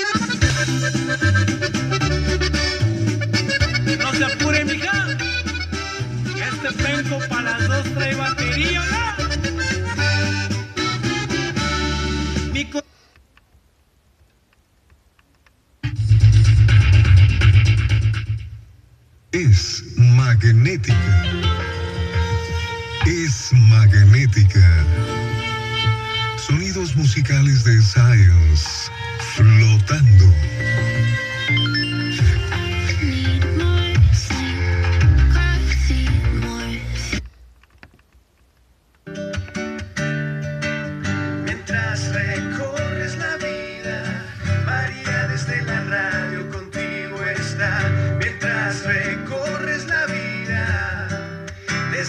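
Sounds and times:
music with heavy bass line: 0.0s - 12.7s, 15.8s - 18.7s, 19.5s - 37.3s, 39.1s - 52.0s
radio music with accordion: 0.0s - 13.3s, 15.8s - 37.7s, 38.8s - 52.0s.

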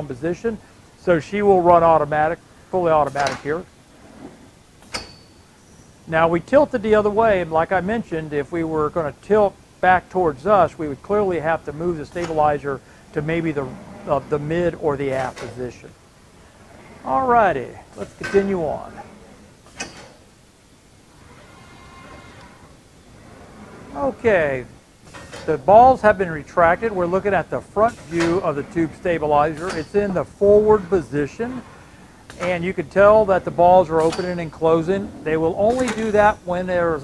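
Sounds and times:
faint machine-room noise: 0.0s - 37.0s
faint whine of drive motors: 0.0s - 37.0s.

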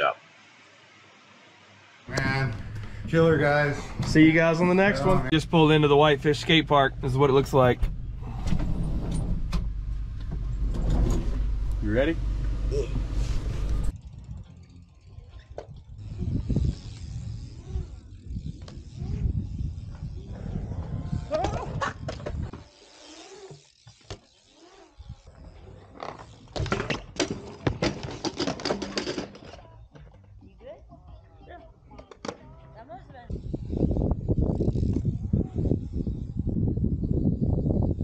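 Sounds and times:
bike tyres rolling on concrete: 0.2s - 9.0s, 9.9s - 38.0s.

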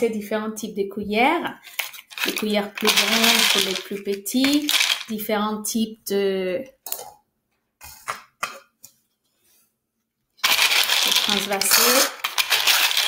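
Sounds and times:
plastic scoops clicking: 1.6s - 5.1s, 10.4s - 13.0s
plastic beads rattling: 1.6s - 5.2s, 10.4s - 13.0s.

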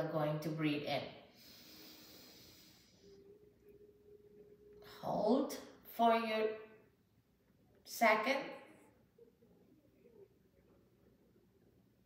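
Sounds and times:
slow inhalation through nostril: 1.3s - 3.2s.

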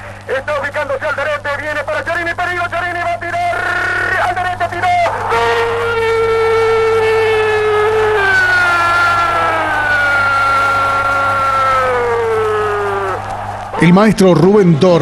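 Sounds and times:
low hum: 2.7s - 15.0s.

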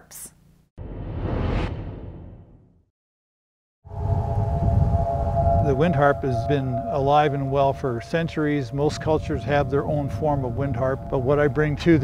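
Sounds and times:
whoosh transition effect: 0.8s - 2.6s
low rumble of wind: 3.9s - 12.0s.

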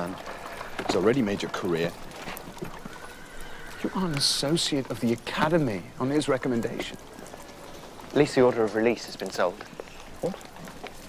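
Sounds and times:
horse hooves clopping: 0.0s - 11.0s
people talking: 0.9s - 2.0s, 3.9s - 7.0s, 8.1s - 9.6s
horse whinny: 1.8s - 4.6s.

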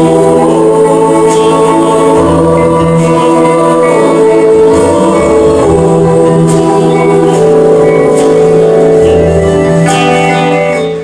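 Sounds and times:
bass: 0.0s - 11.0s
guitar: 0.0s - 11.0s
keyboards: 0.0s - 11.0s
voices singing long notes: 0.0s - 11.0s.

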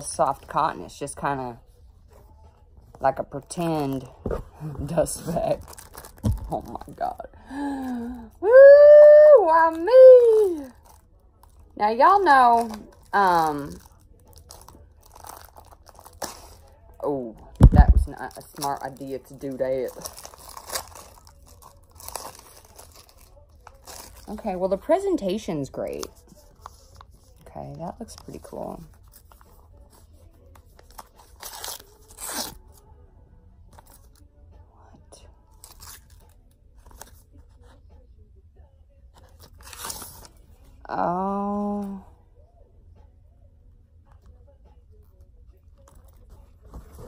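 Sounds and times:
paper envelope rustling and tearing: 18.2s - 24.4s, 28.2s - 32.6s, 39.2s - 40.4s
scissors cutting wrapping: 19.8s - 24.4s, 30.7s - 32.6s.

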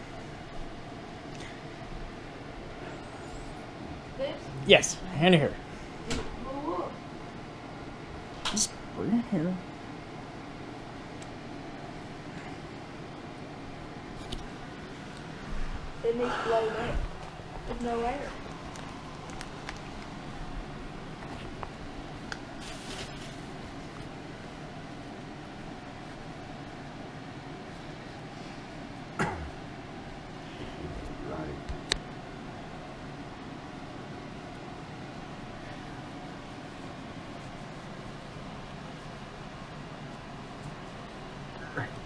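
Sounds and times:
low room hum: 0.0s - 42.0s
clothes rustling: 22.5s - 24.1s.

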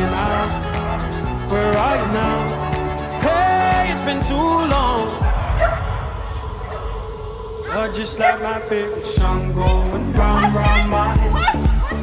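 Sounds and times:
pop music: 0.0s - 5.7s, 7.4s - 12.0s.

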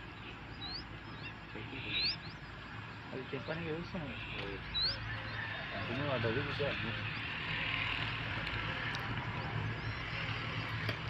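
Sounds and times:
low outdoor background: 0.0s - 11.0s
small bird chirping: 0.0s - 11.0s.

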